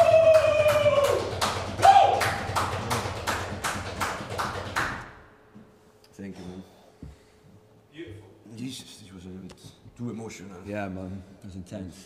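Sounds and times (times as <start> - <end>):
percussive taps: 0.7 - 5.1.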